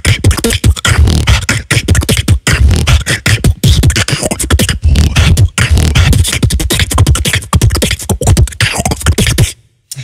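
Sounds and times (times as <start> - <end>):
beatboxing: 0.0 - 10.0.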